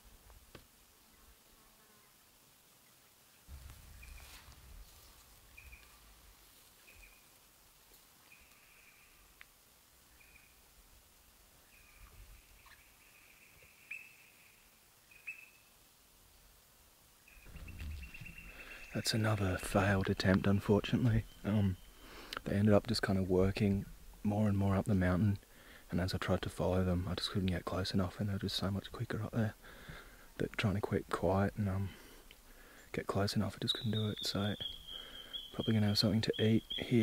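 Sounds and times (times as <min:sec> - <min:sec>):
soft low rustling: 0:03.5 - 0:08.8, 0:17.4 - 0:29.4.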